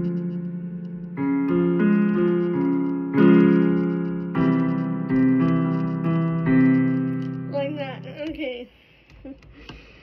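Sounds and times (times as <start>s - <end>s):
keyboard chords: 0.0s - 8.6s.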